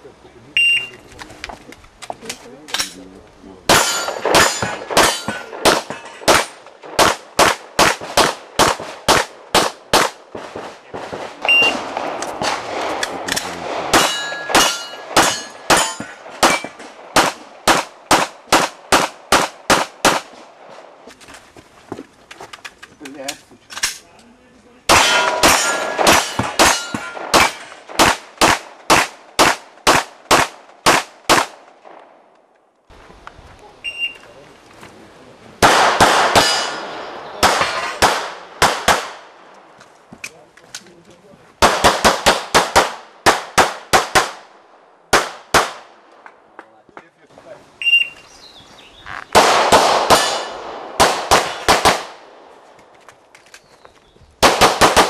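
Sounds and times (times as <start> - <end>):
steel targets ringing: 3.7 - 6.3, 13.9 - 16.8, 24.9 - 27.8, 36.4 - 38.0
pistol shots: 3.7 - 20.5, 24.9 - 32.0, 35.6 - 39.4, 41.6 - 44.5, 45.1 - 46.0, 49.3 - 52.5, 54.4 - 55.0.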